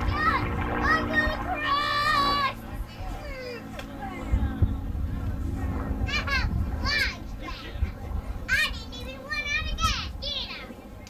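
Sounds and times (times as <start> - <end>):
low rumble: 0.0 - 3.6
children shouting and squealing: 0.0 - 3.8.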